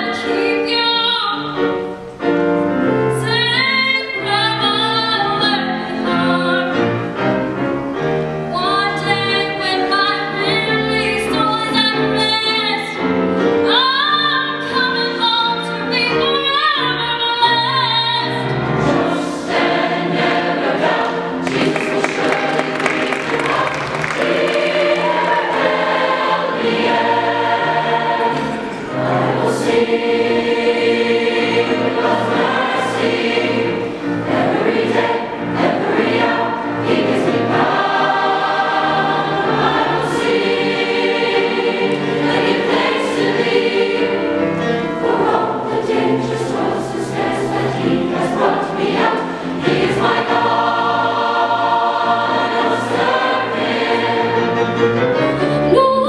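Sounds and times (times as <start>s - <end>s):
mixed choir singing: 0.0s - 1.8s, 2.4s - 7.4s, 8.5s - 56.0s.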